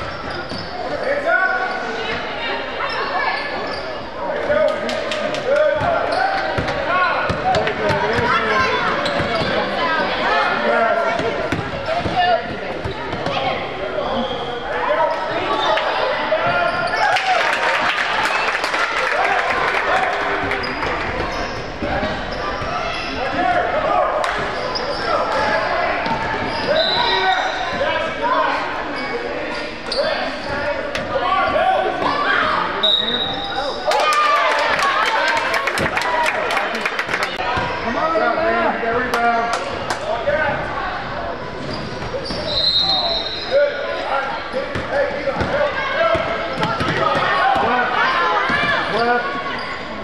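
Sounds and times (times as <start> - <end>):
shoe squeaks: 0.0 - 1.0, 2.8 - 4.2, 6.0 - 6.6, 9.0 - 9.7, 16.5 - 17.1, 20.6 - 23.2, 24.5 - 25.4, 26.0 - 27.9, 28.9 - 30.8, 32.8 - 33.9, 41.6 - 43.7, 49.0 - 50.0
people shouting and chattering: 0.0 - 50.0.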